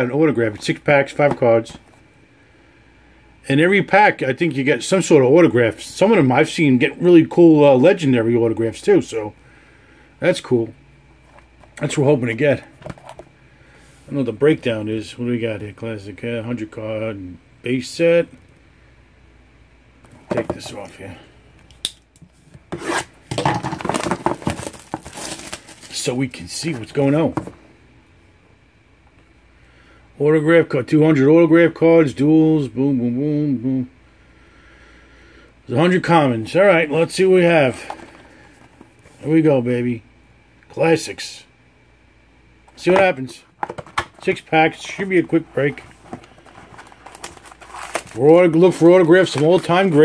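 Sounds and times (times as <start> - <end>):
plastic wrap tearing and crinkling: 22.9 - 26.2, 45.0 - 50.0.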